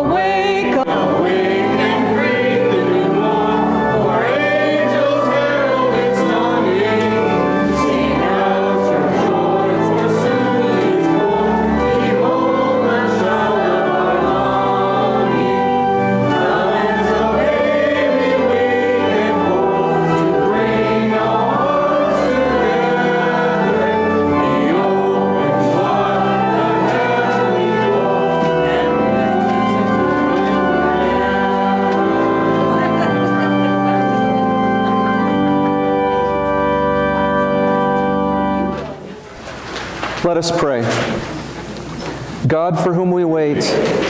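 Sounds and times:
organ holding sustained notes: 0.0s - 39.4s
congregation singing a hymn: 0.0s - 44.0s.

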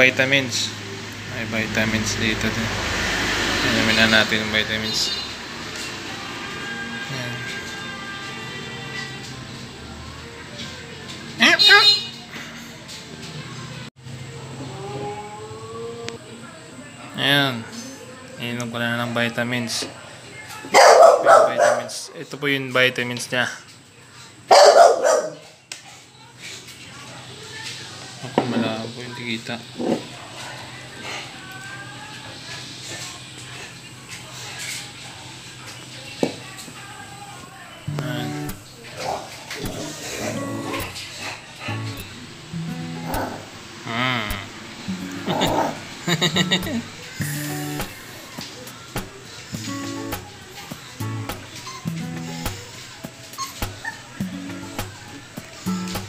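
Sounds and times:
puppy barking: 20.7s - 22.0s, 24.5s - 25.5s, 43.0s - 43.5s, 45.2s - 45.8s
background music with steady beat: 37.9s - 38.7s, 39.6s - 43.6s, 44.3s - 56.0s
puppy whimpering: 53.3s - 54.3s.

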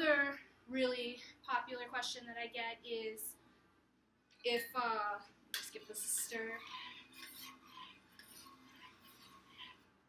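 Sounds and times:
utensil stirring in metal pot: 5.6s - 10.0s.

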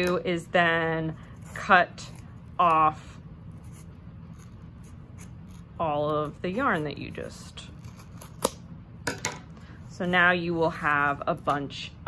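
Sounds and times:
scissors snipping yarn: 7.7s - 8.6s.

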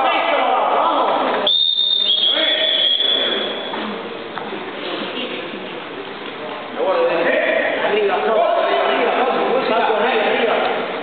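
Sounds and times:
sports whistle blasts: 1.4s - 3.7s.

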